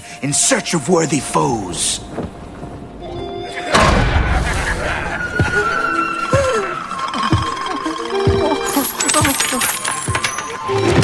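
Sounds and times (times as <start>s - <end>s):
film score music: 0.0s - 11.0s
loud deep hit: 3.7s - 5.2s.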